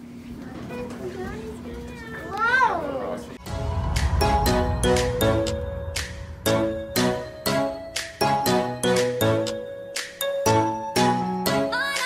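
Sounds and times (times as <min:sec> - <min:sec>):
background music: 0:03.4 - 0:12.0.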